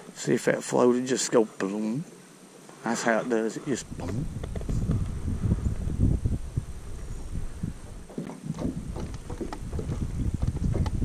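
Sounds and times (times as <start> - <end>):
wind buffeting microphone: 3.6 - 11.0.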